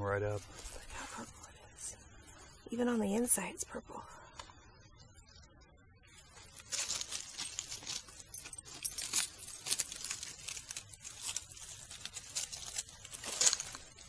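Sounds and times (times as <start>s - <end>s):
dry leaves rustling and crackling: 6.2s - 14.0s.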